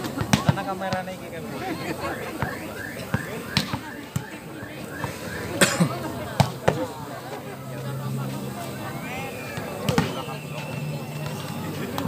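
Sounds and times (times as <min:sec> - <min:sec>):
volleyball being struck: 0:02.4 - 0:04.3.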